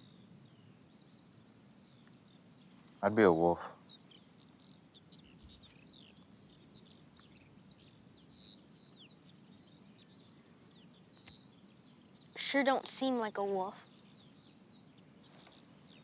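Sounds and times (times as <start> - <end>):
birds chirping: 0.0 - 16.0
low background hiss: 0.0 - 16.0.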